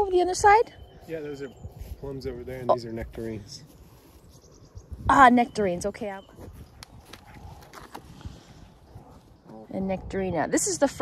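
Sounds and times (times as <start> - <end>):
footsteps on grass and soil: 0.9 - 5.2, 5.9 - 9.6.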